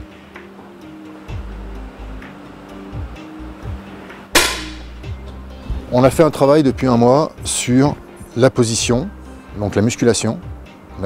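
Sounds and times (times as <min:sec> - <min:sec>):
background music with beat: 0:00.0 - 0:09.6
air rifle shot: 0:04.4 - 0:04.9.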